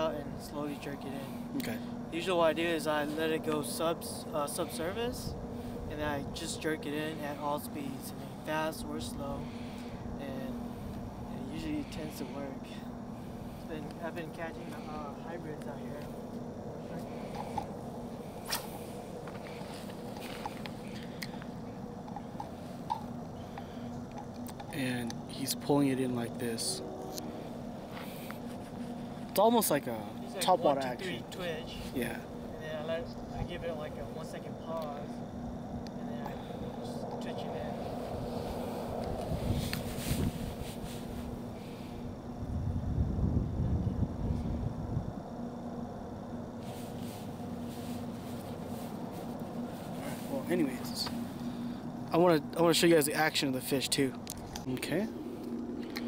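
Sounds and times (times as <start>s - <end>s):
steady background hiss: 0.0s - 56.0s
steady low hum: 0.0s - 56.0s
wind rumbling on microphone: 35.2s - 46.1s.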